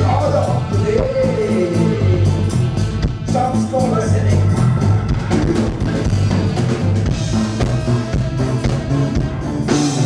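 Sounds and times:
bass guitar: 0.0 - 10.0
drum kit: 0.0 - 10.0
live band playing: 0.0 - 10.0.

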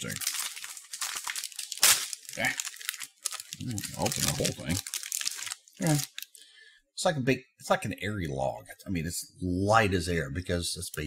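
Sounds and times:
plastic wrapper crinkling: 0.0 - 6.4.

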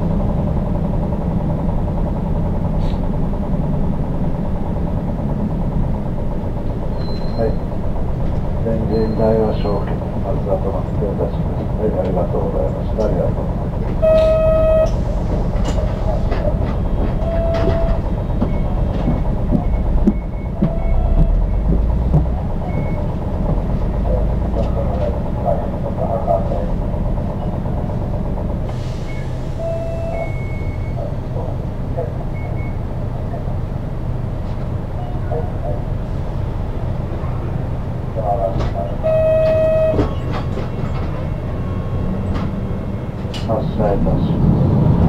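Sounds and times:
bus diesel engine idling: 0.0 - 45.0
short electronic beeps: 7.0 - 7.6, 14.0 - 14.9, 39.1 - 40.0.

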